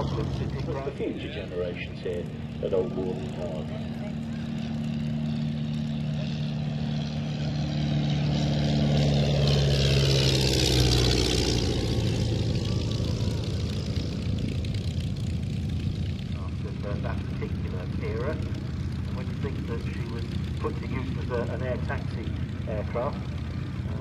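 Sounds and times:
propeller plane droning by: 0.0 - 24.0.

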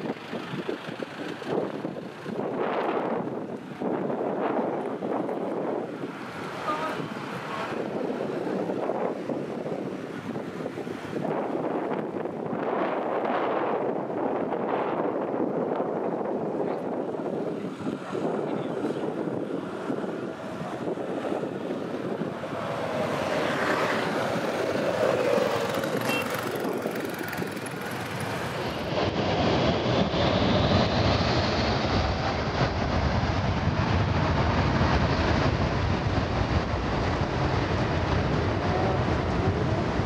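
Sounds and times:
jet engines roaring: 0.0 - 40.0
rising engine whine: 17.2 - 40.0.

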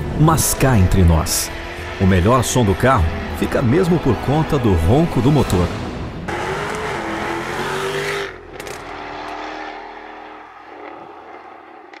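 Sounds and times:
car engine running hard: 0.0 - 12.0.

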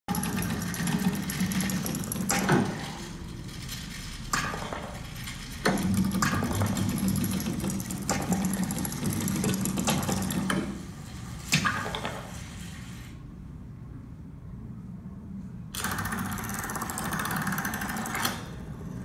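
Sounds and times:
low mechanical hum: 0.1 - 19.0.

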